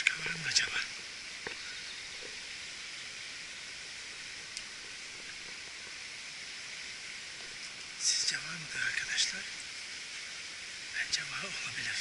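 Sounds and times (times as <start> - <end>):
stream running water: 0.0 - 12.0.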